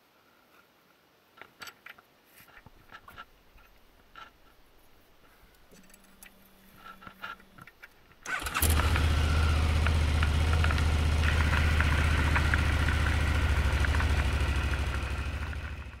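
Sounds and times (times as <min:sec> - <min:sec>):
motorcycle engine starting and idling: 0:05.6 - 0:16.0.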